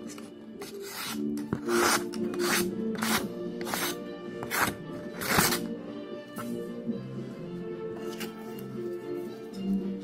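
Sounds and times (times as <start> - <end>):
knife slicing paper: 0.6 - 5.7.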